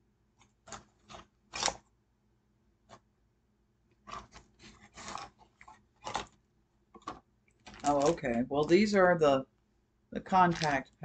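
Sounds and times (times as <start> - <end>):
plastic wrap and cardboard rustling: 4.0 - 6.4, 7.0 - 9.2, 10.2 - 11.0.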